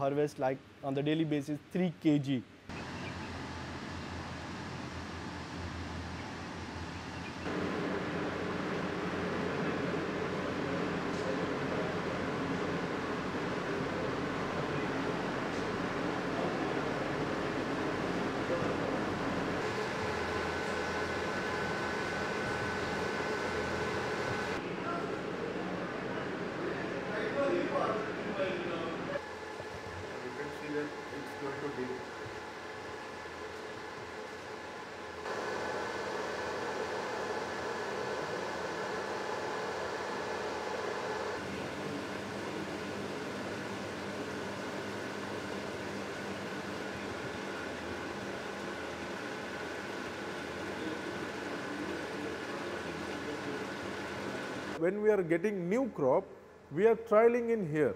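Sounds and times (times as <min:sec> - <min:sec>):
fan and air-conditioning noise: 0:00.0 - 0:57.9.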